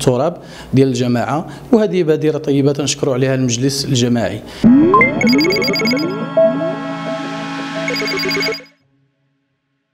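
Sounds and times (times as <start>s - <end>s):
synthesizer tones with rising sweeps: 4.6s - 8.8s
rapid short high beeps: 4.7s - 8.7s.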